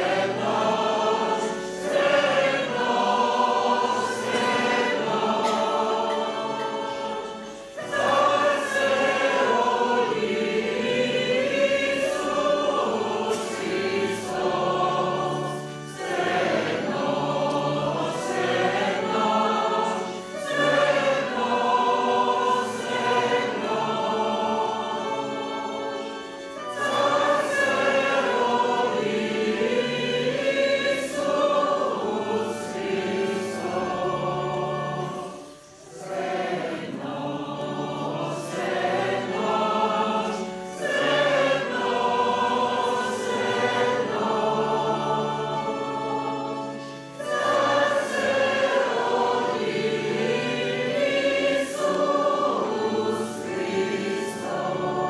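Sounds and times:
church choir singing a hymn: 0.0 - 55.0.

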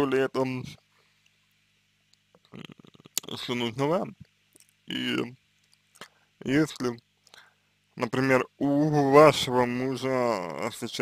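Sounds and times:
faint low hum: 0.0 - 11.0
mouth clicks: 2.1 - 3.3.

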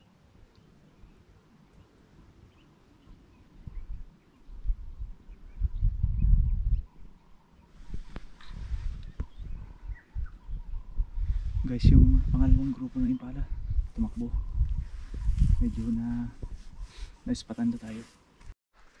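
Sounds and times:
faint bird chirps: 0.0 - 11.8
low rumbling on microphone: 3.1 - 17.2
rustling noise: 7.7 - 9.8, 13.8 - 19.0.

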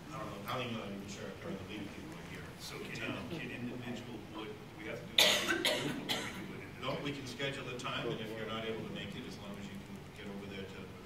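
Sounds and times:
person coughing: 5.2 - 6.5.

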